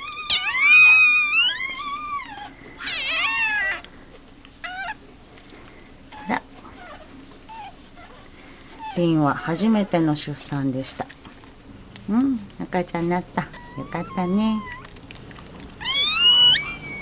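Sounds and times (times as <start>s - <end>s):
puppy crying in high squeals: 0.0s - 3.8s, 4.7s - 5.0s, 13.5s - 15.0s, 15.8s - 17.0s.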